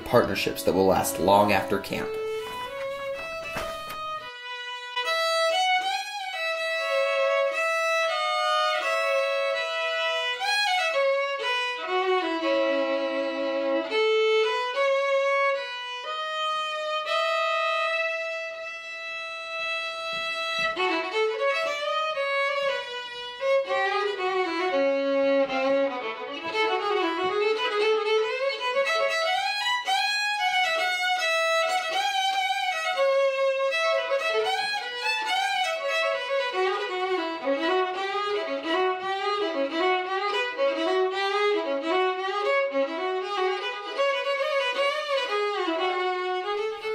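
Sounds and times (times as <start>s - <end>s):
solo violin: 0.0s - 46.9s.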